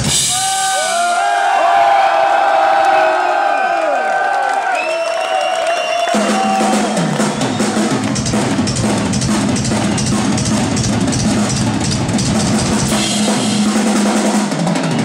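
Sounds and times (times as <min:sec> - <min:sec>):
drums and cymbals: 0:00.0 - 0:01.3, 0:05.8 - 0:15.0.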